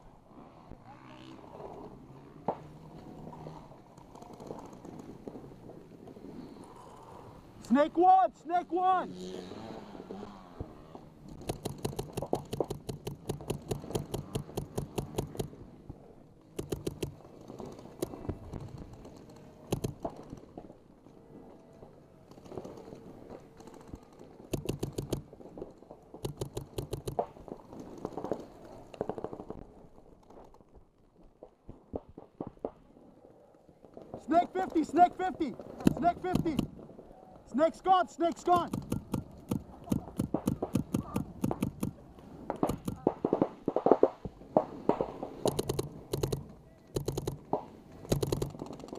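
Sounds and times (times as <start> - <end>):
paintball markers firing: 11.4 - 15.6, 16.5 - 17.2, 17.8 - 20.4, 24.5 - 25.4, 26.1 - 27.4, 35.7 - 36.8, 38.3 - 48.9.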